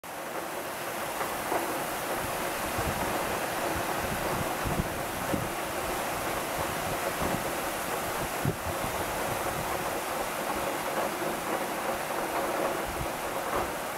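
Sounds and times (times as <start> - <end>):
heavy rain: 0.0 - 13.9
wind buffeting microphone: 2.1 - 11.0, 12.0 - 13.9.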